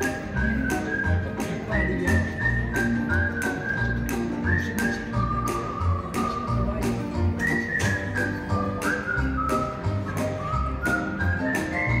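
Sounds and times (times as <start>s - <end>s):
whistled melody over a beat: 0.0s - 12.0s.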